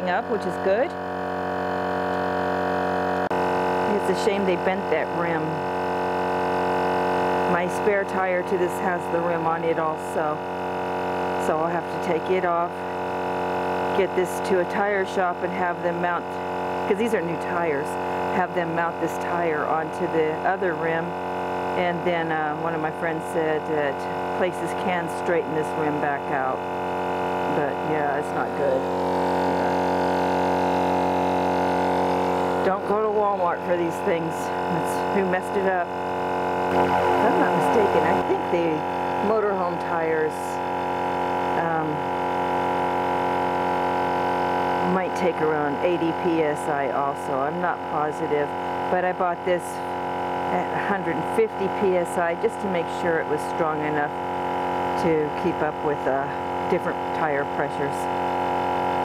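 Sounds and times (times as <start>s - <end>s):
tire inflator compressor running: 0.0s - 59.0s.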